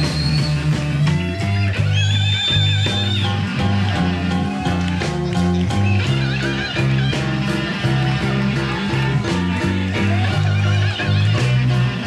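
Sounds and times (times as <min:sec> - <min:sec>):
electric blues band: 0:00.0 - 0:12.0
electric guitar bending note: 0:01.2 - 0:12.0.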